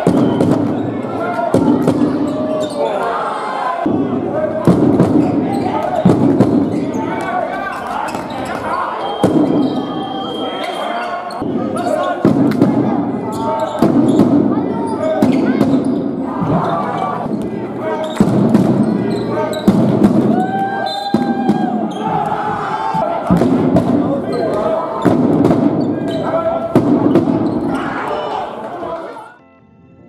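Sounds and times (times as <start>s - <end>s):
voices calling out: 0.0s - 29.3s.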